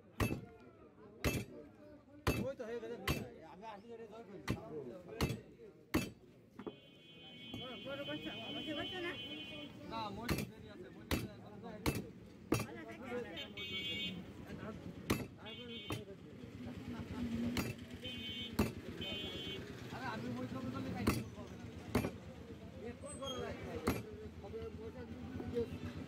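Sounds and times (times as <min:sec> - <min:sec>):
cleaver chopping on wooden block: 0:00.2 - 0:00.5, 0:01.2 - 0:01.5, 0:02.2 - 0:03.4, 0:04.4 - 0:06.7, 0:10.2 - 0:12.8, 0:15.0 - 0:16.1, 0:17.5 - 0:17.8, 0:18.5 - 0:19.0, 0:21.0 - 0:22.2, 0:23.8 - 0:24.1.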